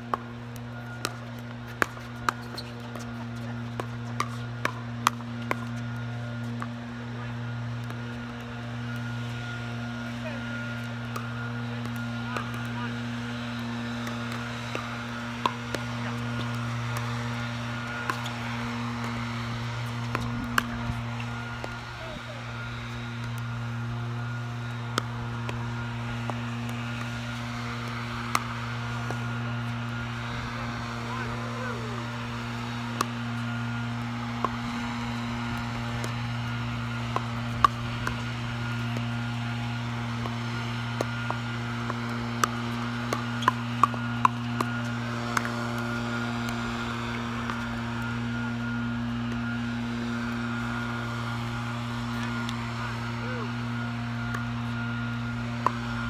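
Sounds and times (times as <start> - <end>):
paddles hitting plastic ball: 0.0 - 50.8, 55.3 - 56.0
low mechanical hum: 0.0 - 56.0.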